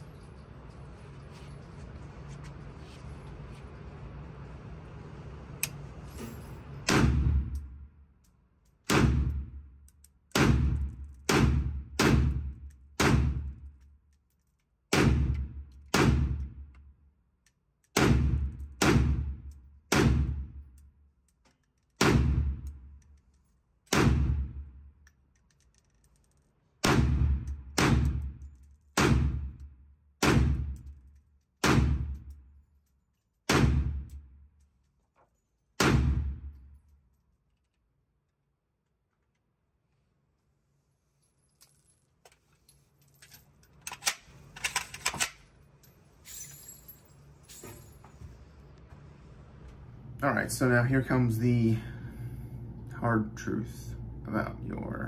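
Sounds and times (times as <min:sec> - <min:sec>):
steady low hum: 0:00.0 - 0:14.2, 0:26.6 - 0:35.0, 0:42.2 - 0:55.0.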